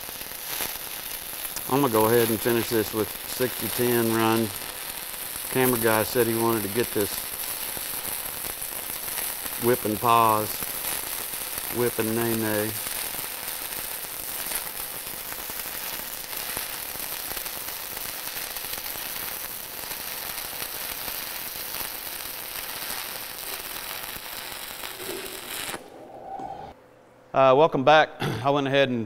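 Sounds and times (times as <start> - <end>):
welding arc crackling: 0.0 - 26.0.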